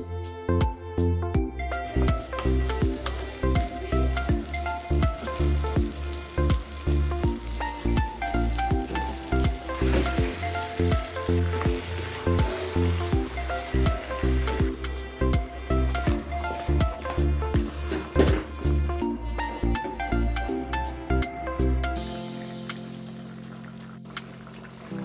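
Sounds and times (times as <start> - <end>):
background music with steady beat: 0.0 - 25.0
vegetables sizzling in oil: 1.8 - 18.9.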